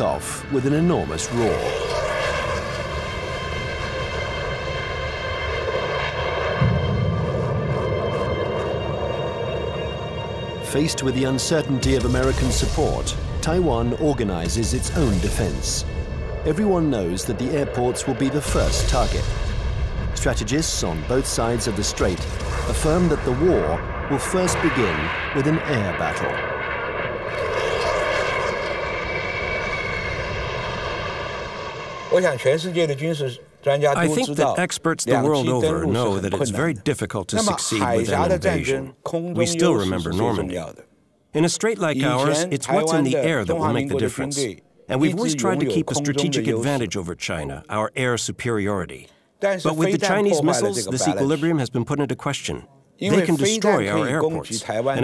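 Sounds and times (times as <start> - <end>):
deep jet rumble: 0.0 - 34.4
jet engine roar with whine: 0.4 - 13.4, 14.4 - 33.2.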